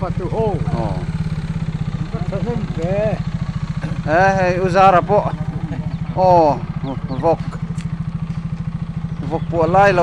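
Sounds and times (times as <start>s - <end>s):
people talking: 0.0s - 1.2s, 2.0s - 3.2s, 3.8s - 7.8s, 9.2s - 10.0s
small engine idling: 0.0s - 10.0s.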